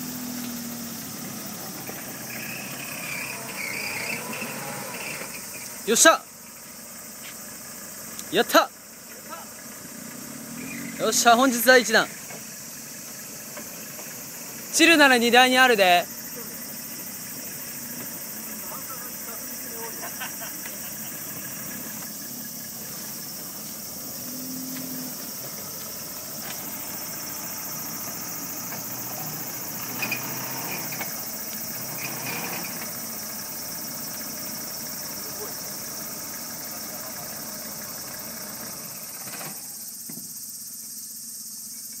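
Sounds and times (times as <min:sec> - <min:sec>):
truck engine running at low revs: 0:00.0 - 0:40.0.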